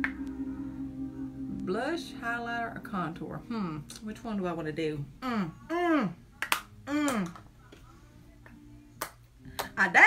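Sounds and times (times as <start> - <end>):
faint music hum: 0.0 - 10.0
woman speaking: 1.5 - 6.2.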